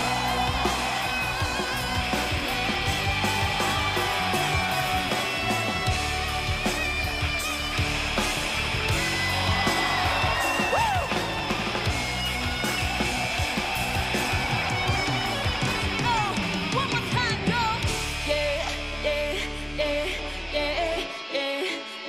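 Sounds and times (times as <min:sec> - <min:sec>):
steady drum beat: 0:00.0 - 0:18.1
bass guitar: 0:00.0 - 0:21.0
electric guitar: 0:00.0 - 0:22.0.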